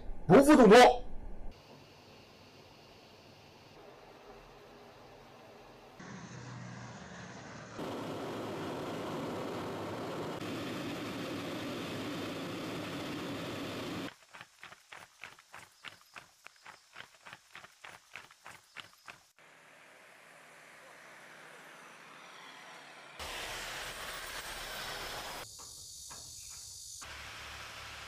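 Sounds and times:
boots marching in step: 14.1s - 19.3s.

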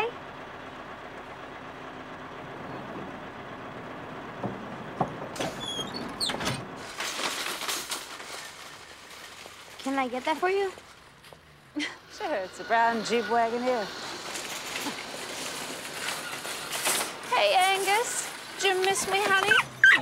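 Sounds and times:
bus engine idling: 0.0s - 20.0s
clattering noise: 4.4s - 9.9s, 13.9s - 20.0s
high squeals: 5.5s - 6.5s, 12.0s - 17.0s.

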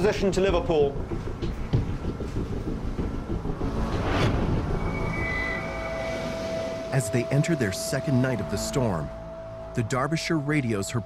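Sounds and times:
dramatic documentary music: 0.0s - 11.0s
whooshing swell: 3.2s - 9.8s
steady high tone: 3.5s - 11.0s.

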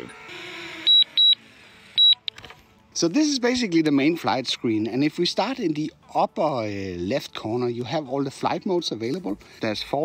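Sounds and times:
short high-pitched electronic beeps: 0.8s - 1.4s, 2.0s - 2.3s.

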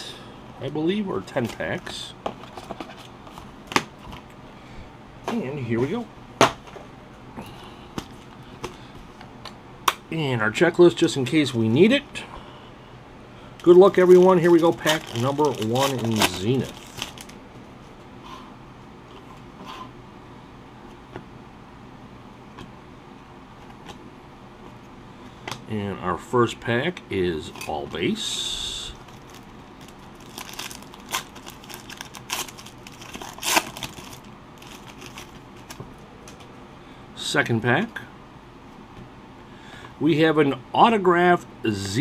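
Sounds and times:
low steady hum: 0.0s - 42.0s
foil packs rustling: 13.6s - 17.4s, 28.9s - 36.5s.

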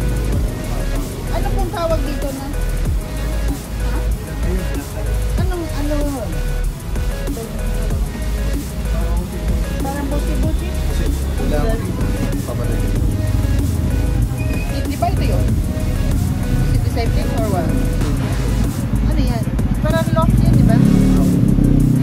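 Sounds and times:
indistinct voices: 0.0s - 22.0s
music playing: 0.0s - 22.0s
road vehicle rumble: 0.0s - 22.0s.

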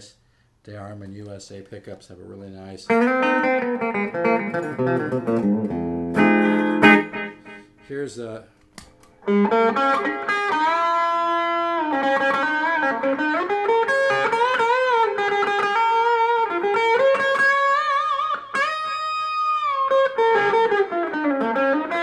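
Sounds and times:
electric guitar lead with bends: 2.9s - 7.8s, 9.2s - 22.0s.

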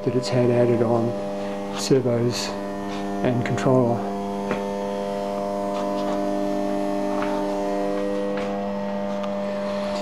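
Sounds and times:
mains electrical hum: 0.0s - 10.0s.

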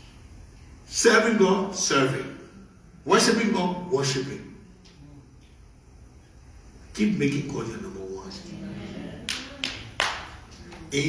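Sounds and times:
sharp hand claps: 9.3s - 10.9s.

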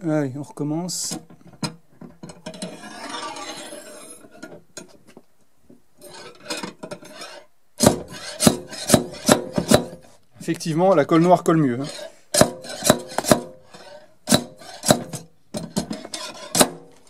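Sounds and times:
tool scraping and rubbing: 2.3s - 5.0s, 6.0s - 17.0s.

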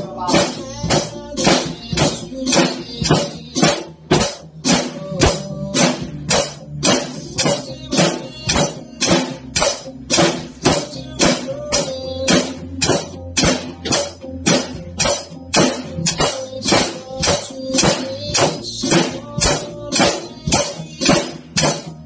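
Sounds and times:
drum kit steady beat: 0.0s - 22.0s
song with guitar and vocals: 0.0s - 22.0s.

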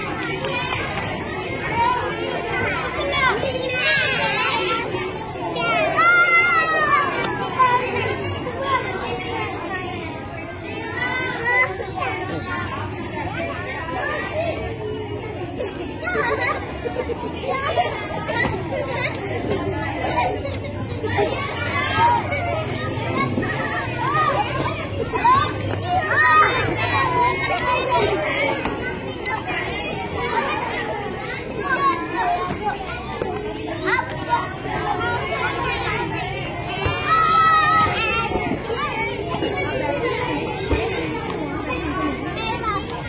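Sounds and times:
children shouting: 0.0s - 43.0s
children talking and calling out: 0.0s - 43.0s.

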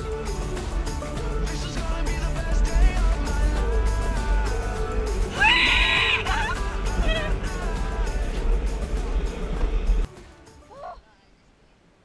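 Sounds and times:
background music with bass: 0.0s - 10.8s
high wavering cry: 5.3s - 7.4s.

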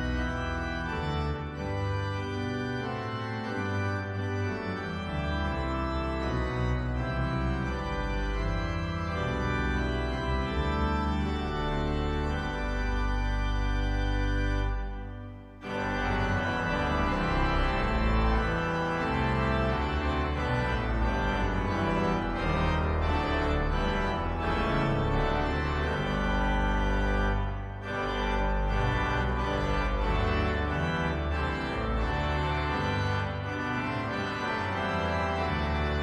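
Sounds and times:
electronic organ playing a hymn: 0.0s - 36.0s.

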